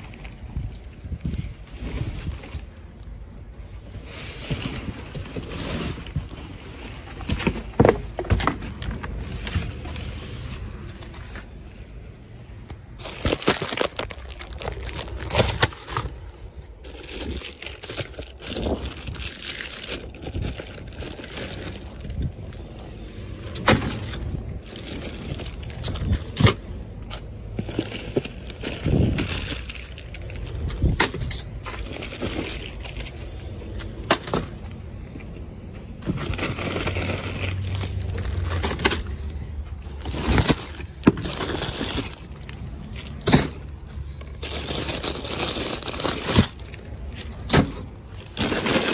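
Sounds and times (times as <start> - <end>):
low rumble: 8.6 - 48.8
plastic wrappers crinkling: 12.6 - 34.8, 35.9 - 48.9.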